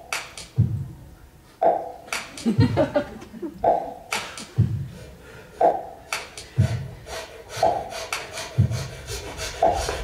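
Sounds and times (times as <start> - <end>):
beatboxing: 0.0 - 0.9, 1.6 - 10.0.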